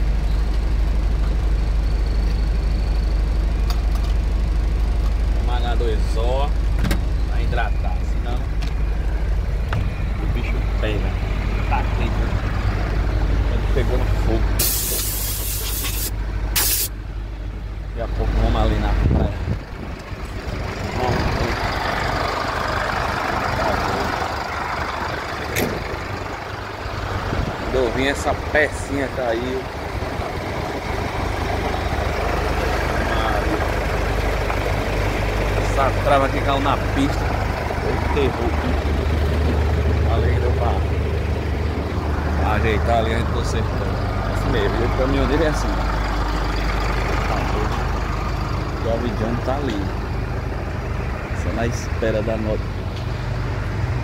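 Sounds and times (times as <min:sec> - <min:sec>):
diesel truck engine rumbling: 0:00.0 - 0:54.0
air brakes hissing: 0:14.6 - 0:17.0.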